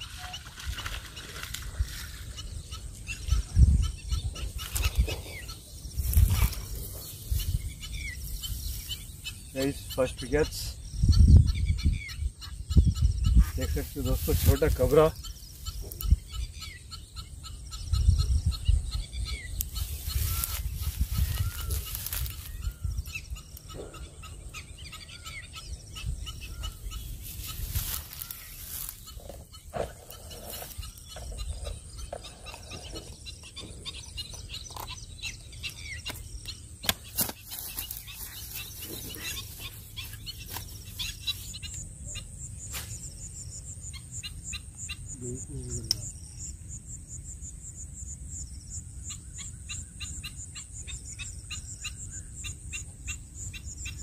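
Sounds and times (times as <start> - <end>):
wind rumbling on microphone: 0.0 - 36.8
birds calling: 0.0 - 54.0
cricket chirring: 0.0 - 54.0.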